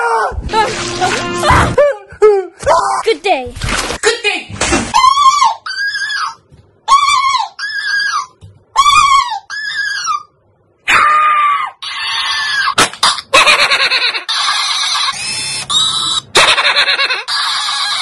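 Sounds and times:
squeaky high-pitched toy voice: 14.2s - 16.2s, 17.0s - 18.0s.

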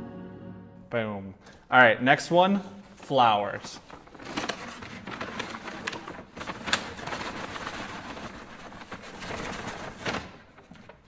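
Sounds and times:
paper bag crinkling: 3.0s - 11.0s.

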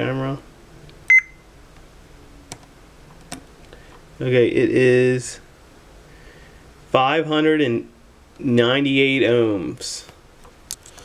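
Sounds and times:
meter short high beep: 1.1s - 1.4s.

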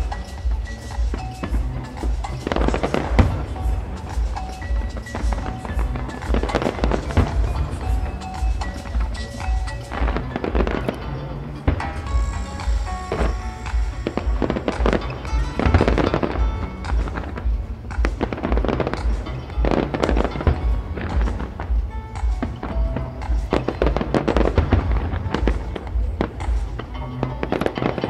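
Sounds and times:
fireworks bangs and crackles: 0.0s - 28.0s
music playing: 0.0s - 28.0s.

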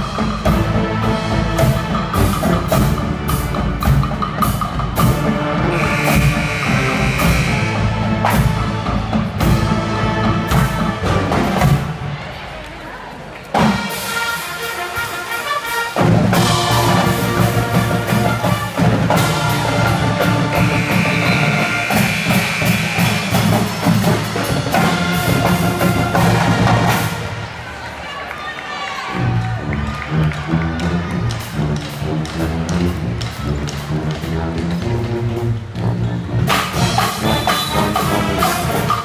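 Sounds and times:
pep band playing: 0.0s - 12.0s, 13.5s - 27.5s, 30.3s - 39.0s.

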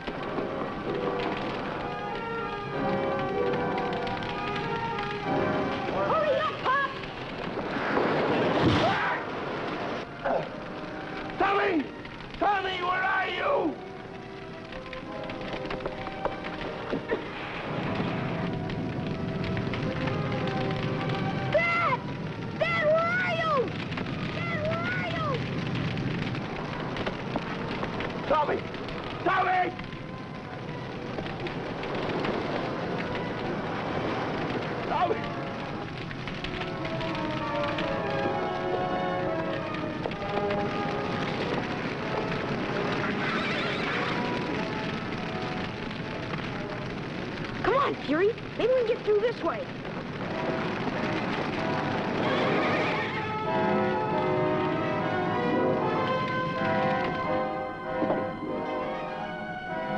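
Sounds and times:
dramatic orchestral music: 0.0s - 59.9s
forest fire crackling roar: 0.0s - 59.9s.

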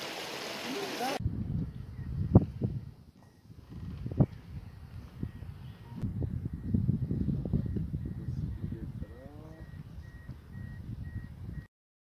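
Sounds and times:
high beeps: 4.6s - 11.7s.

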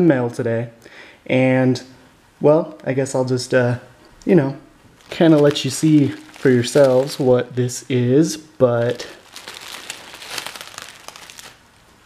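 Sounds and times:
bubble wrap crinkling: 4.9s - 12.0s.

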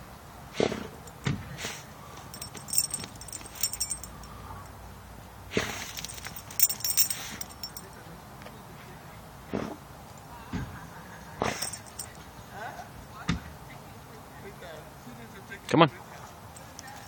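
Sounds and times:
dog collar tags jingling: 2.2s - 4.8s, 5.6s - 8.0s, 11.4s - 12.3s, 16.5s - 17.0s
dog sniffing and snorting: 5.6s - 7.5s.

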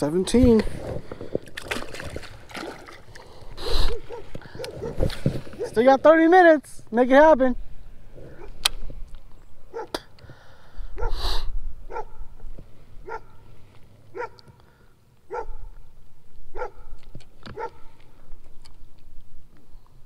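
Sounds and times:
dog barking: 3.9s - 5.0s, 9.7s - 10.0s, 11.0s - 11.2s, 11.9s - 12.3s, 13.0s - 13.4s, 14.1s - 14.6s, 15.3s - 15.8s, 16.5s - 17.0s, 17.6s - 17.8s.

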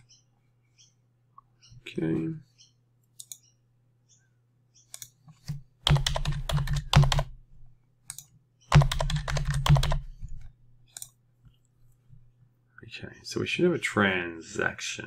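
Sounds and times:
typing on computer keyboard: 5.8s - 7.3s, 8.1s - 10.1s.

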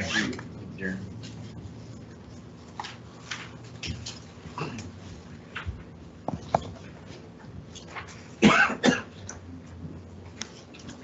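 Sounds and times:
person coughing: 8.4s - 9.2s.

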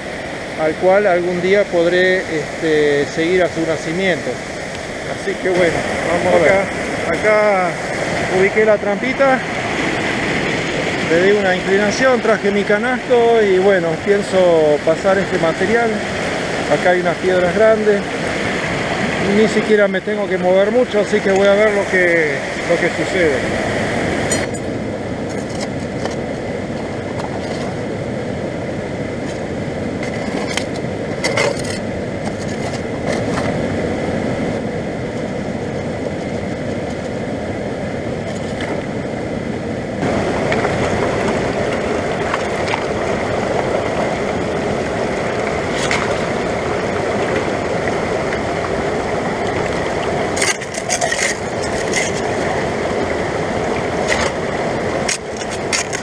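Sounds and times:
stream rushing over rocks: 0.0s - 56.0s.

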